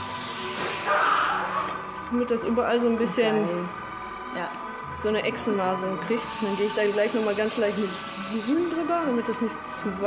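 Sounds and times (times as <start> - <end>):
airbrush spraying hiss: 6.3 - 8.8.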